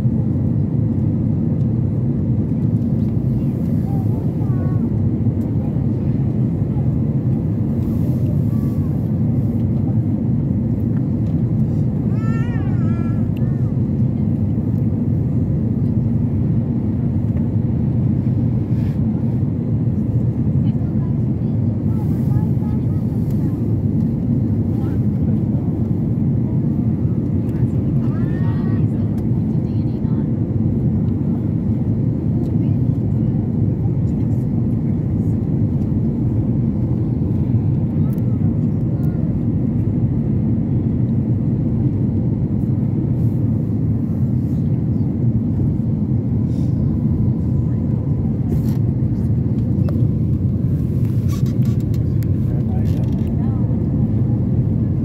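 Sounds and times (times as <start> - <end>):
jet engine rumble: 0.0 - 55.0
rushing airflow: 6.9 - 10.0, 21.8 - 27.0, 45.6 - 52.5.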